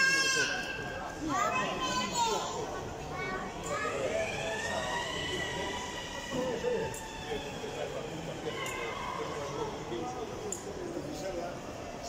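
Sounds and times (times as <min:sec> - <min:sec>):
children calling and squealing: 0:00.0 - 0:06.2.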